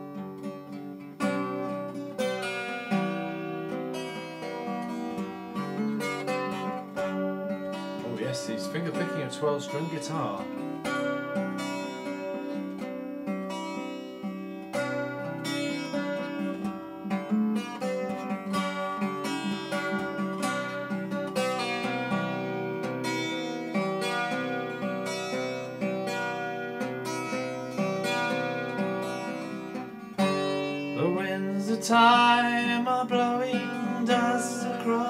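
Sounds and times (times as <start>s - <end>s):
fingerpicked acoustic guitar: 0.0s - 35.0s.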